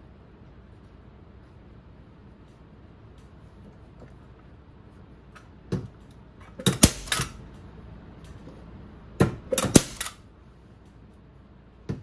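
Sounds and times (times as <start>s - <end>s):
staple gun clacks: 9.6s - 10.2s.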